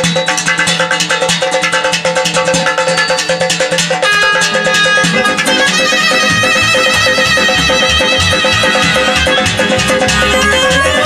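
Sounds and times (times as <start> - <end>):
frame drum beat: 0.0 - 11.0
quick repeated guitar notes: 0.0 - 11.0
ornamented clarinet melody: 4.0 - 11.0.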